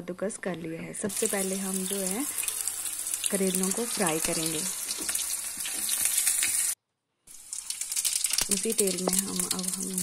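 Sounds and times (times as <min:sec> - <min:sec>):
vegetables sizzling in hot oil: 0:01.1 - 0:10.0
metal spoon turning food in pan: 0:01.2 - 0:06.8, 0:07.4 - 0:10.0.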